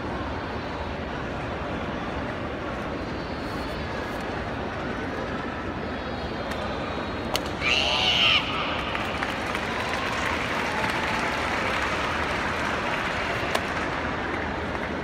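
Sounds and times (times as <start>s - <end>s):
murmur of arena crowd: 0.0s - 15.0s.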